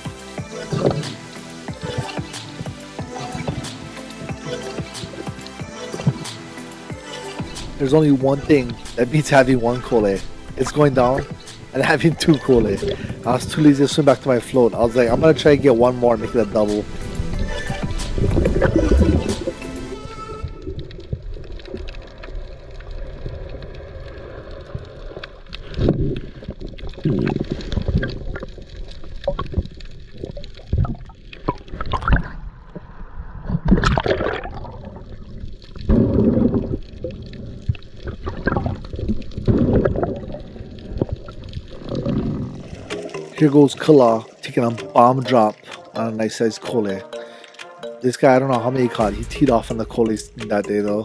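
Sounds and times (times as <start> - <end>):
muffled underwater gurgles: 0.0 - 2.4, 7.0 - 21.8, 25.7 - 32.4, 33.4 - 46.9
background music: 0.0 - 21.1, 41.5 - 51.0.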